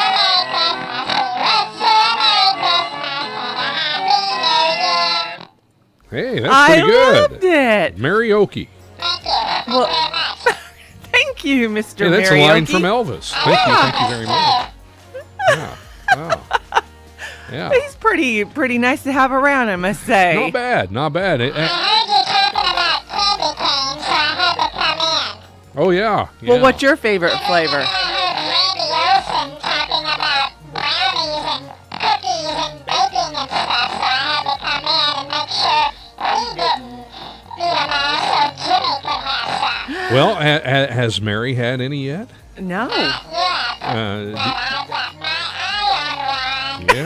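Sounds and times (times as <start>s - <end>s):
man talking in comic voice: 6.2s - 8.7s, 12.0s - 14.7s, 15.5s - 16.4s, 20.4s - 21.8s, 25.8s - 26.8s, 39.9s - 42.2s, 43.8s - 45.0s, 46.8s - 47.0s
man babbling in comic voice: 6.4s - 7.6s, 12.0s - 16.6s, 37.6s - 40.7s, 43.0s - 47.0s.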